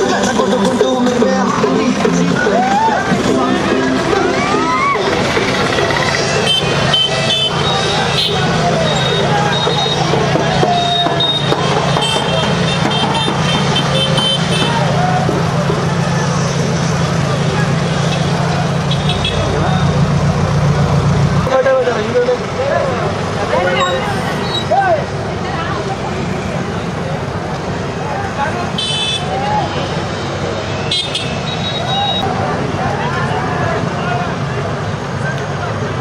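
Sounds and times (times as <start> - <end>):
road traffic: 0.0 - 36.0
vehicle engine humming: 0.0 - 36.0
people shouting: 2.4 - 16.3, 28.4 - 30.0, 31.2 - 32.4
vehicle horns tooting: 6.1 - 15.0, 18.0 - 20.0, 28.7 - 32.3.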